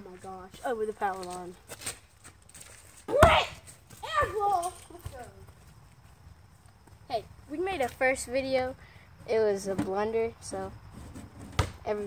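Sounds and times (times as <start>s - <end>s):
basketball bouncing on hard ground: 3.0s - 5.8s, 9.2s - 10.1s, 11.4s - 12.0s
boy shouting excitedly: 3.1s - 5.3s.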